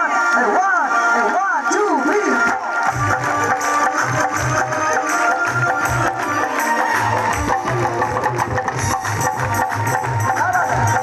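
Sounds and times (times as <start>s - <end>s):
amplified devotional music: 0.0s - 11.0s
crowd clapping along: 0.1s - 11.0s.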